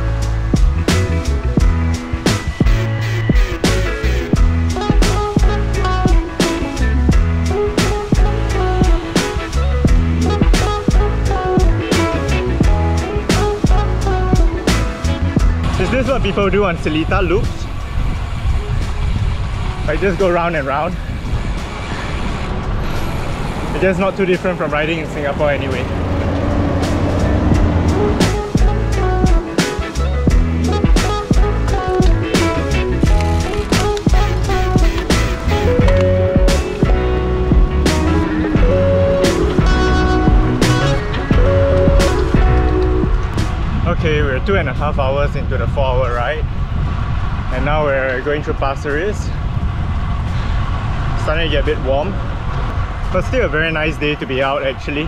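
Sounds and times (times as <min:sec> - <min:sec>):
road and tyre noise: 0:00.0 - 0:55.0
wind rushing over microphone: 0:00.0 - 0:55.0.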